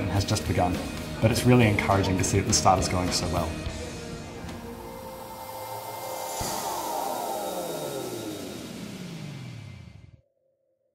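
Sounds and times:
background music: 0.0s - 10.1s
logo tones sliding down: 4.4s - 9.8s.

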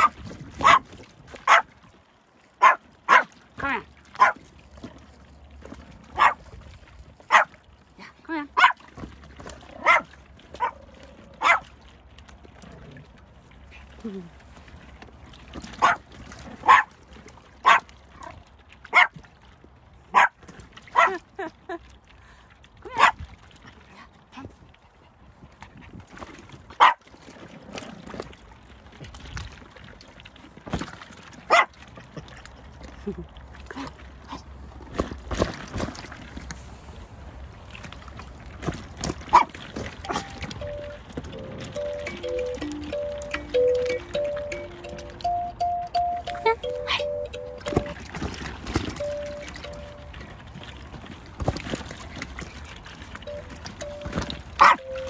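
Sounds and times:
puppy barking: 0.0s - 0.8s, 1.5s - 1.7s, 2.6s - 3.3s, 4.2s - 4.4s, 6.2s - 6.4s, 7.3s - 7.5s, 8.6s - 8.8s, 9.8s - 10.8s, 11.4s - 11.7s, 15.8s - 16.0s, 16.6s - 16.9s, 17.6s - 17.8s, 18.9s - 19.1s, 20.1s - 20.4s, 26.8s - 27.0s, 31.5s - 31.7s, 39.3s - 39.5s, 40.1s - 40.4s, 54.6s - 55.0s.

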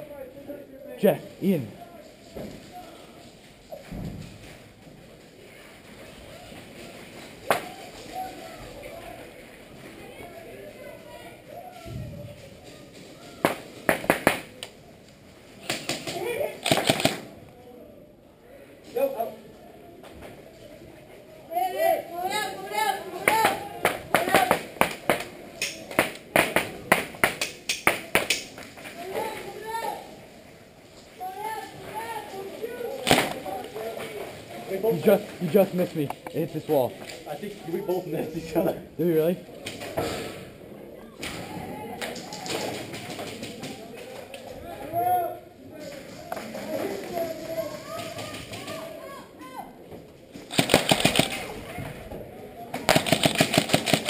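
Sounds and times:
sharp crack: 7.4s - 7.8s, 13.4s - 14.8s, 15.6s - 17.4s, 23.2s - 28.7s, 33.0s - 33.5s, 50.5s - 51.6s, 52.8s - 54.0s
airsoft rifles firing: 13.4s - 14.5s, 15.6s - 17.4s, 23.3s - 28.6s, 50.5s - 51.6s, 52.8s - 54.0s.

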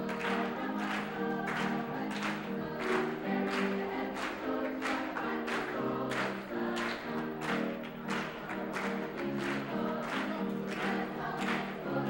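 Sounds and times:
choir singing in harmony: 0.0s - 12.0s
hands clapping on the beat: 0.0s - 12.0s.

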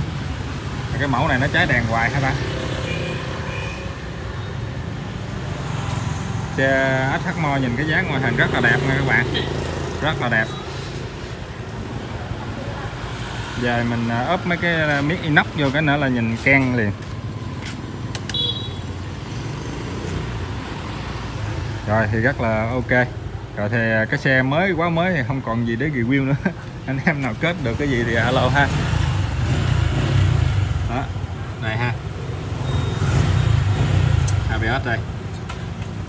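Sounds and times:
sharp clicks: 18.1s - 18.4s
motor vehicle hum: 26.1s - 36.0s
high-pitched beep: 32.6s - 33.1s.

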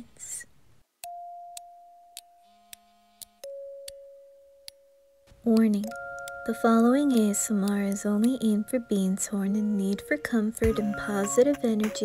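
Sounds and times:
soft ticks: 5.5s - 9.0s.

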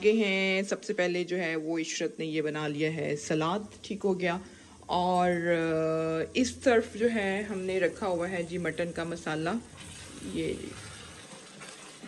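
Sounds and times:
liquid boiling in a pot: 0.0s - 12.0s.

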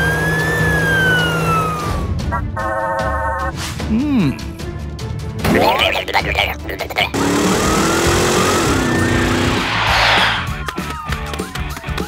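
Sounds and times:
cartoon police siren wailing: 0.0s - 3.4s
background music: 1.5s - 9.6s
whoosh of noise: 9.2s - 10.6s.

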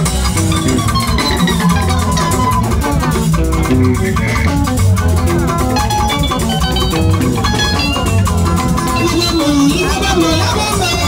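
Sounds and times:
electric guitar quick notes: 0.0s - 11.0s
highlife band music: 0.0s - 11.0s.

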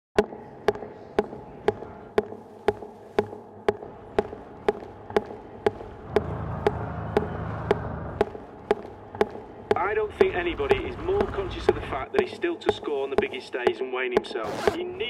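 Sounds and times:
footsteps on concrete: 0.2s - 14.8s
low rumble: 5.8s - 8.6s, 9.8s - 12.0s.

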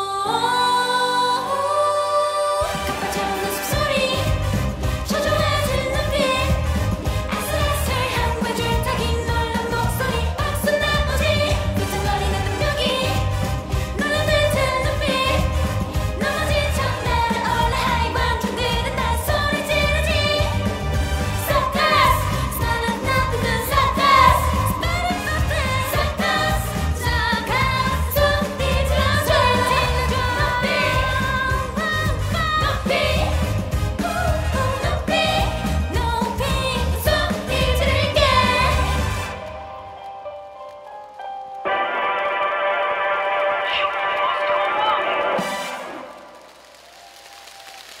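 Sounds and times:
women singing into microphones: 0.0s - 13.4s, 14.0s - 39.4s
pop dance song over loudspeakers: 2.2s - 39.6s, 41.7s - 46.2s
audience applause: 41.7s - 48.0s.

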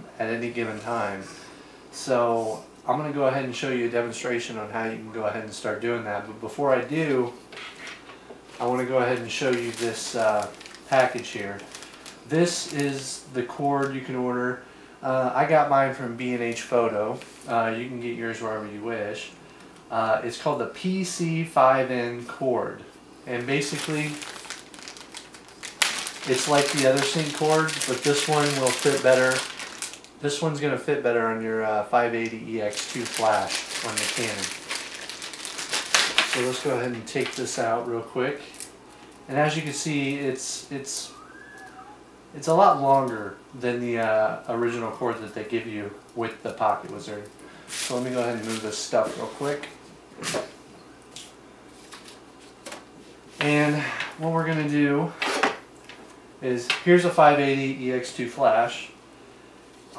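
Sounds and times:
plastic bag crinkling: 8.6s - 13.1s, 23.3s - 30.2s, 32.6s - 37.7s, 47.7s - 49.6s
loud plastic crackle: 9.3s - 13.1s, 23.3s - 30.1s, 32.6s - 37.7s, 47.7s - 48.8s.

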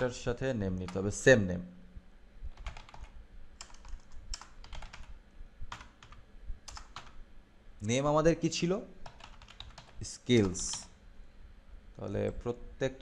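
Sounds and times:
computer keyboard typing: 2.5s - 7.2s, 9.0s - 11.0s.

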